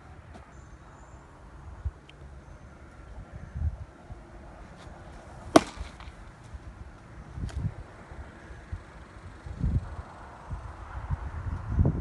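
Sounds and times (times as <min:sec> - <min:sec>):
baseball popping into mitt: 0:05.5 - 0:06.2.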